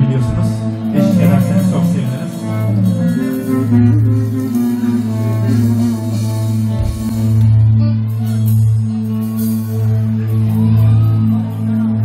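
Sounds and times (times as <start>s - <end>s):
deep held bass note: 0.0s - 12.0s
live band playing slowly: 0.0s - 12.0s.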